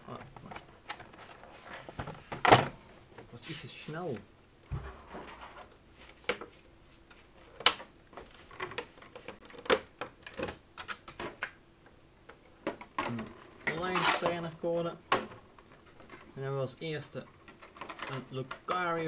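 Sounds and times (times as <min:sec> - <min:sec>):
person speaking: 0:03.2 - 0:04.3, 0:13.0 - 0:15.1, 0:16.3 - 0:17.4, 0:18.0 - 0:19.0.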